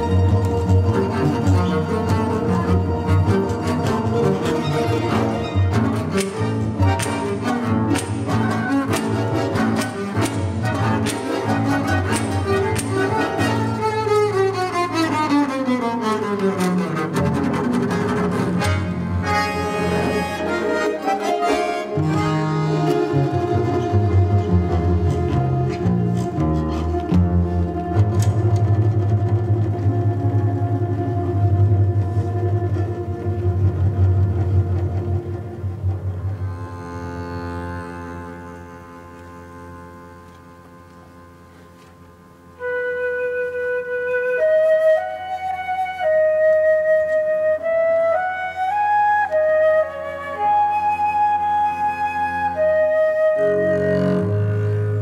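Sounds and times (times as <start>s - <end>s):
folk instrument orchestra playing: 0.0s - 55.0s.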